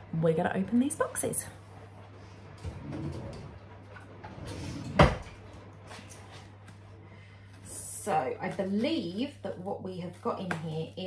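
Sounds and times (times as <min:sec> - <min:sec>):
drawer shutting with a knock: 0:04.3 - 0:05.4.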